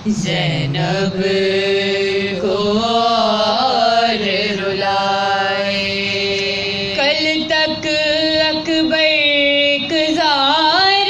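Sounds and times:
women chanting a lament: 0:00.0 - 0:11.0.

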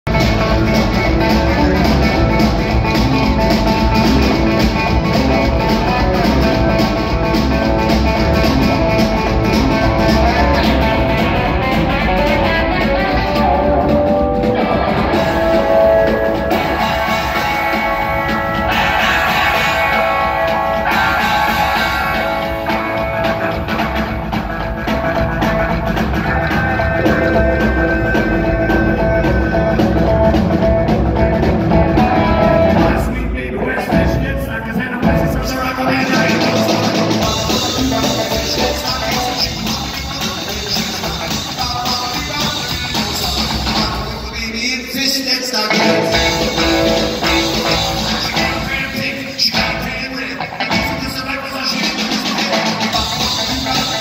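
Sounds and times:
rockabilly band playing live: 0:00.0 - 0:54.0.

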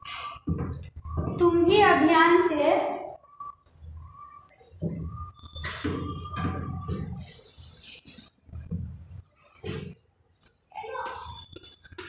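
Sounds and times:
high-pitched jingling: 0:03.6 - 0:05.3.

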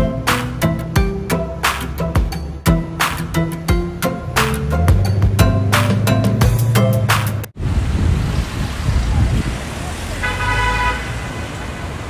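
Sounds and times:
road traffic rumble: 0:00.0 - 0:12.0
car horn toot: 0:10.2 - 0:11.4.

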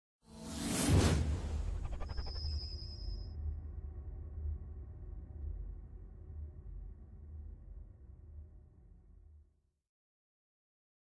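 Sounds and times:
whoosh sweep: 0:00.3 - 0:03.2
low droning bass: 0:03.4 - 0:09.3.

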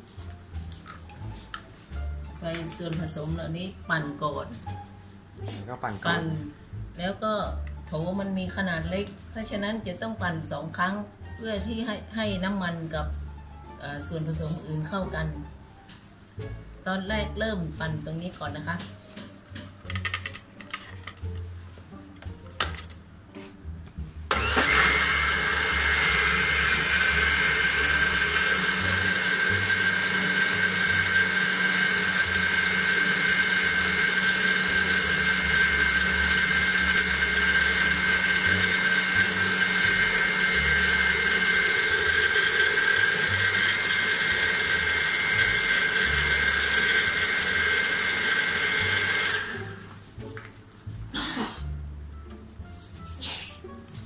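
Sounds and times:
electric blender whining: 0:24.3 - 0:50.0.

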